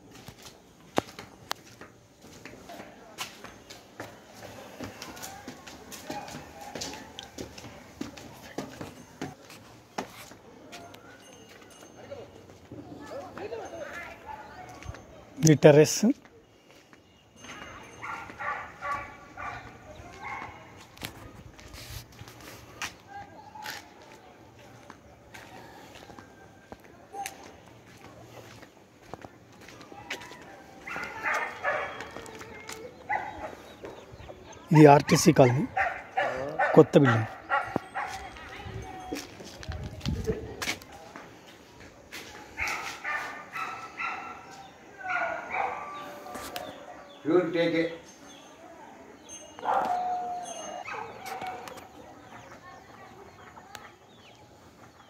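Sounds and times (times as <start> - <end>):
dogs barking: 5.1 - 7.7, 17.9 - 21.0, 30.0 - 34.1, 34.7 - 38.5, 42.4 - 47.3, 49.6 - 52.0.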